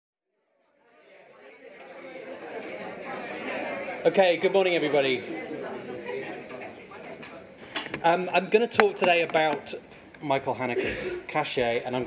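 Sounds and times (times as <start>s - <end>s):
chatter of many voices: 0.4s - 12.0s.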